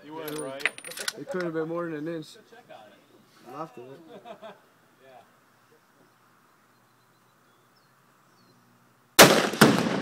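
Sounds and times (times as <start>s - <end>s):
rifle shot: 9.2s - 10.0s
rolling echo: 9.2s - 10.0s
target exploding: 9.2s - 10.0s.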